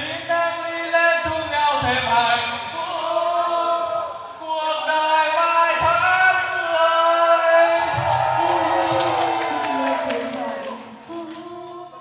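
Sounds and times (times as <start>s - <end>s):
people singing into microphones: 0.0s - 12.0s.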